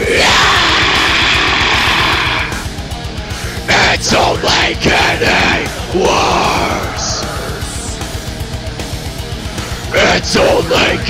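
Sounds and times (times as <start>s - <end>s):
shouted vocals: 0.0s - 2.7s, 3.6s - 8.2s, 9.8s - 11.0s
harsh scream: 0.0s - 2.8s, 3.4s - 8.1s
heavy metal music: 0.0s - 11.0s.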